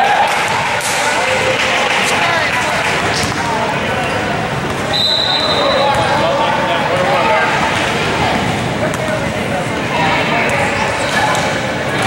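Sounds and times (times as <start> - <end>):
voices in a large gym: 0.0 - 12.0
whistle blast: 4.9 - 6.0.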